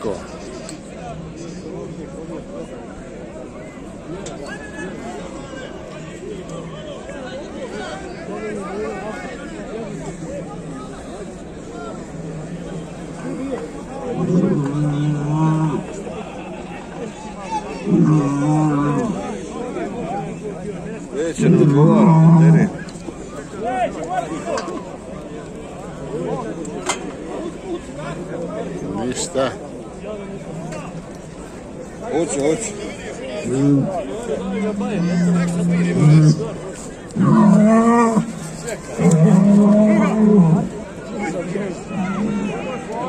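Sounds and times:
bull bellowing: 14.1 - 15.9, 17.8 - 19.3, 21.4 - 22.8, 33.4 - 36.6, 37.2 - 40.8.

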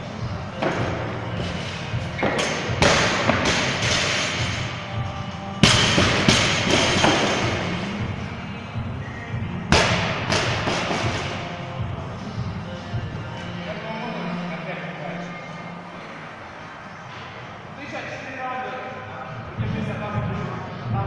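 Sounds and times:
background music: 0.0 - 21.0.

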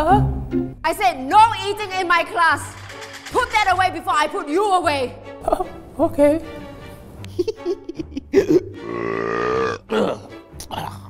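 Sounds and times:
man belching: 8.3 - 11.0.

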